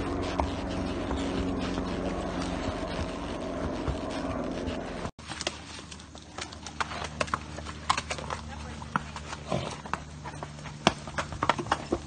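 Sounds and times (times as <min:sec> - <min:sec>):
horse hooves clopping on rocks: 0:00.0 - 0:12.0.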